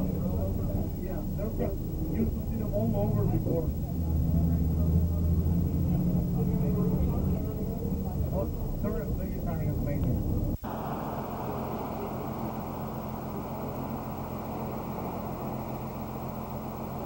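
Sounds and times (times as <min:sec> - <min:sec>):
boat motor rushing: 0:00.0 - 0:17.0
vehicle engine droning: 0:00.0 - 0:17.0
voices talking: 0:00.0 - 0:17.0.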